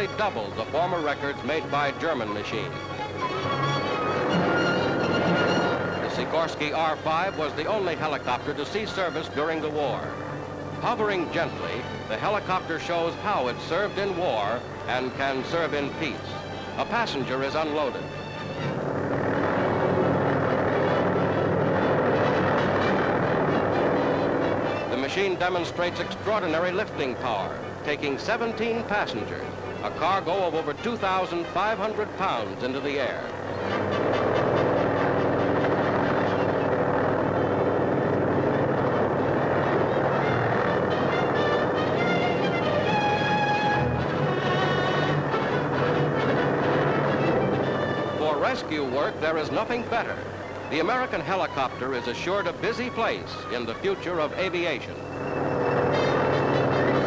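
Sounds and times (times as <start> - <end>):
background music with held notes: 0.0 - 57.0
helicopter engine and rotor: 0.0 - 57.0
steady noise: 0.0 - 57.0.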